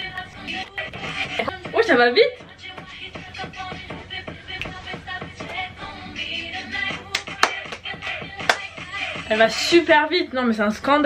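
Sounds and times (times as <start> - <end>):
upbeat dance track: 0.0 - 10.1.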